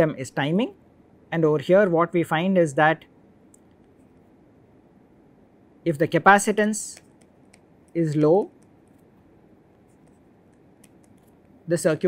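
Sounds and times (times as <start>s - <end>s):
stylus scratching on tablet: 7.0s - 11.7s.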